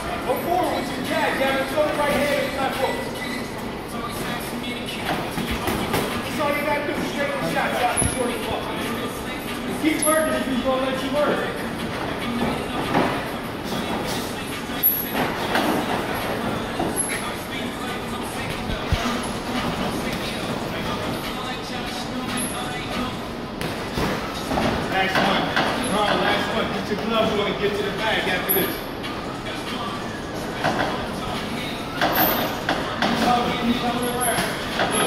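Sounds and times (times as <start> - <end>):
indistinct voices: 0.0 - 35.0.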